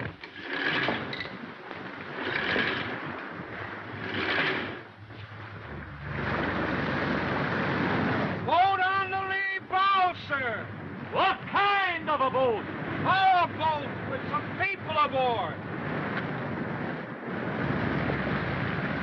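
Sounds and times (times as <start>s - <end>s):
sea noise: 0.0s - 19.0s
storm wind: 0.0s - 19.0s
man shouting calls: 8.5s - 10.6s, 11.2s - 15.5s.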